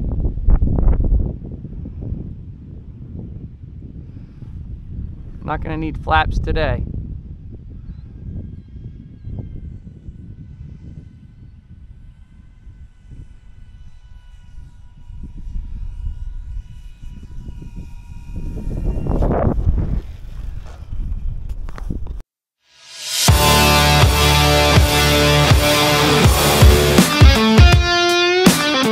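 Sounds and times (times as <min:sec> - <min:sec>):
wind rumble on microphone: 0:00.0 - 0:22.2
electric model plane motors whining: 0:07.0 - 0:21.8.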